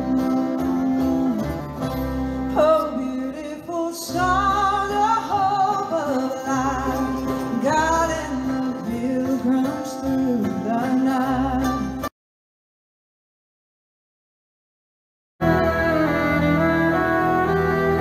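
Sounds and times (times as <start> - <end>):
male and female voices singing: 0.0 - 1.6, 2.5 - 12.1
acoustic string band playing: 0.0 - 12.1, 15.4 - 18.0.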